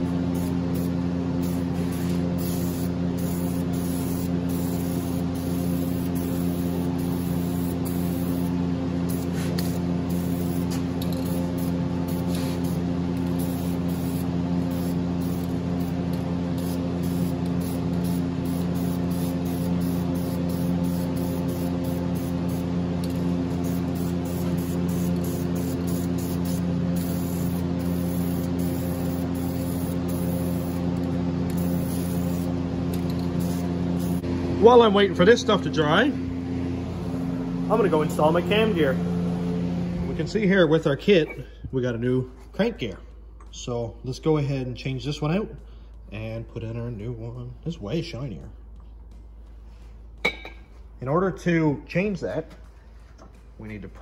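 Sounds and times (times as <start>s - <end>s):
steady droning hum: 0.0s - 54.0s
spray paint can hissing: 0.3s - 34.2s.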